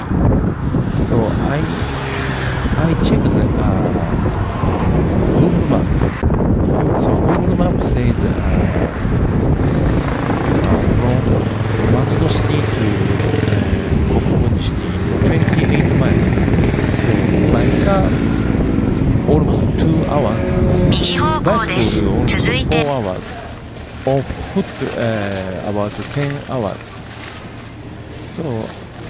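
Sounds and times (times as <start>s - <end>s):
wind rumbling on microphone: 0.0s - 21.0s
road traffic: 0.0s - 29.0s.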